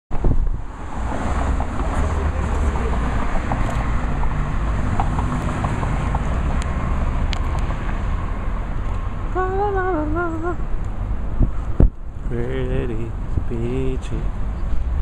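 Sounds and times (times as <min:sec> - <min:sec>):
wind rumble on microphone: 0:00.1 - 0:06.8, 0:09.2 - 0:15.0
outdoor traffic noise: 0:00.1 - 0:15.0.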